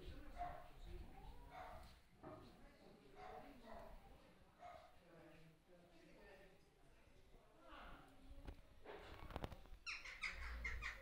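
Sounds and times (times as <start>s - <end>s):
bird chirping: 9.8s - 11.0s.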